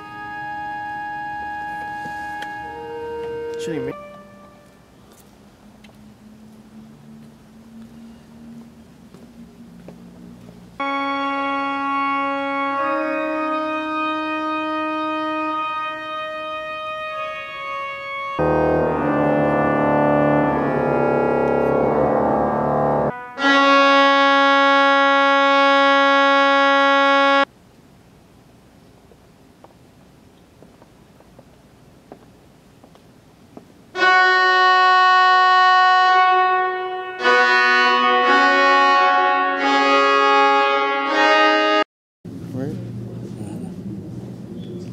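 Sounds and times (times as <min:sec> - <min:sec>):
church organ chords: 0:00.0 - 0:04.9, 0:10.8 - 0:27.5, 0:34.0 - 0:41.8.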